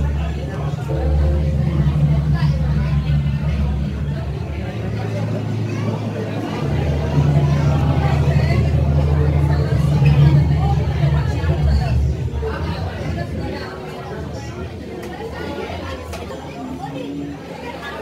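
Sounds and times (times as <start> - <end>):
loud steady low hum: 0.0 - 16.8
voices chattering: 0.0 - 18.0.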